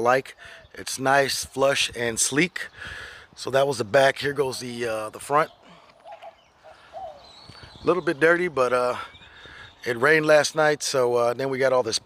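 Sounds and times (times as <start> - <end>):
faint bird chirps: 4.2 - 10.9.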